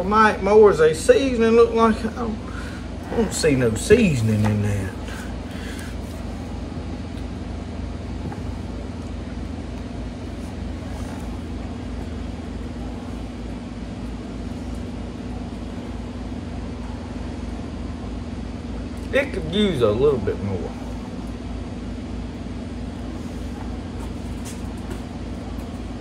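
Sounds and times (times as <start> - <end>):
low mechanical hum: 0.0 - 26.0.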